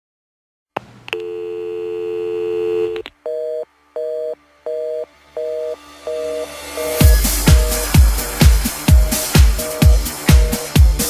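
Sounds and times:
telephone line clicks: 0:01.1 - 0:01.4, 0:02.6 - 0:03.1
busy signal beeps: 0:01.2 - 0:07.0
dial tone: 0:01.2 - 0:07.0.

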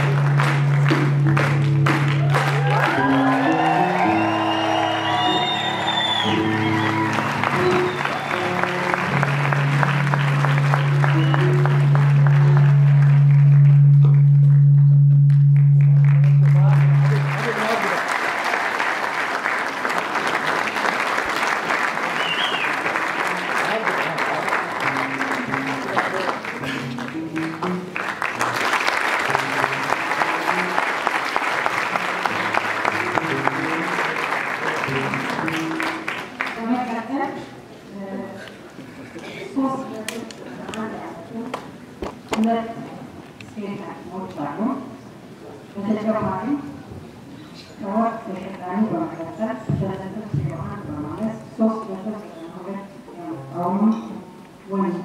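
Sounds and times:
audience applause: 0:00.0 - 0:14.2, 0:15.6 - 0:36.9
background music: 0:00.0 - 0:18.2, 0:21.3 - 0:38.4.

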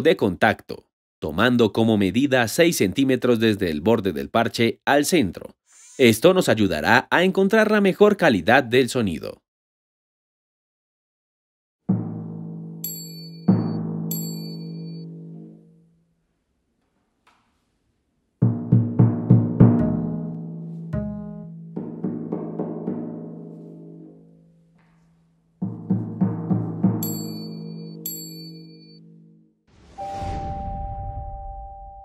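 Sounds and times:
short high chimes: 0:12.8 - 0:15.1, 0:27.0 - 0:29.0, 0:30.0 - 0:32.0.

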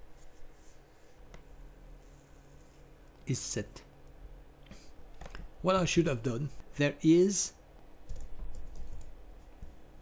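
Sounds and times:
typing on computer keyboard: 0:08.1 - 0:09.2.

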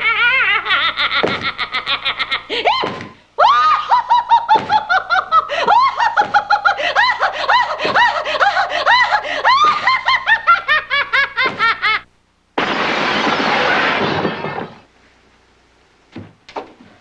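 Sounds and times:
woman laughing high-pitched: 0:00.0 - 0:12.0.

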